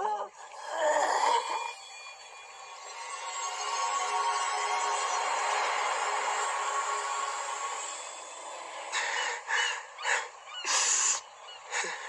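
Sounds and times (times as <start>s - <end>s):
seagulls calling: 9.0s - 12.0s.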